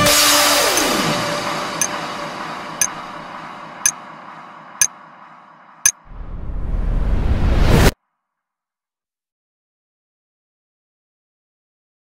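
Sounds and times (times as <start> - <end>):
rising whoosh: 6.1 - 8.0.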